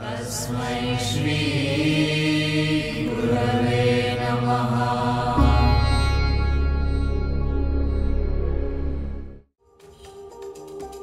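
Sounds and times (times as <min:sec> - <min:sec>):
deep low drone: 0:04.9 - 0:09.4.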